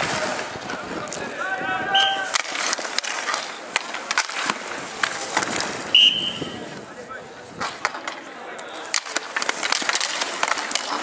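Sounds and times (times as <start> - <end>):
hockey sticks clacking: 0.0 - 11.0
skate wheels rolling: 0.0 - 11.0
referee's whistle blast: 1.9 - 2.3, 6.0 - 6.6.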